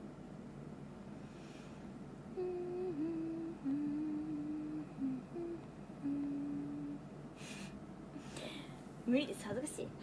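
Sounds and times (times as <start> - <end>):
woman humming: 2.3 - 7.7.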